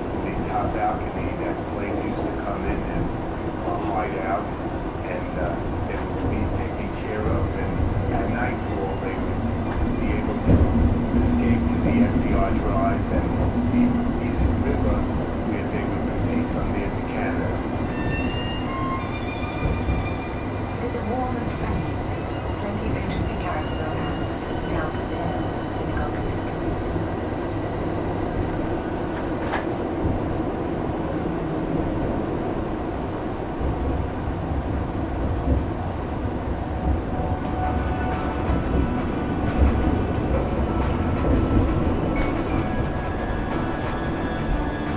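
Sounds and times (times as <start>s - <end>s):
train wheels rumbling on rail: 0.0s - 44.9s.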